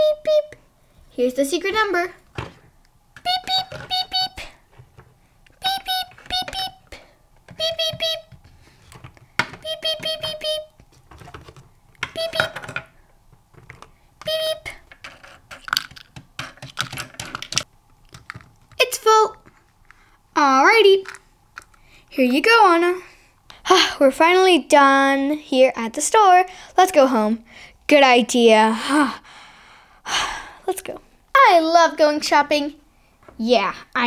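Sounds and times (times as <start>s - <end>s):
toy scanner beeping: 3.2s - 4.4s, 5.6s - 6.8s, 7.6s - 8.3s, 9.6s - 10.7s, 12.0s - 12.8s
plastic toys clicking and clattering: 11.0s - 13.9s, 14.8s - 18.8s, 21.0s - 21.8s.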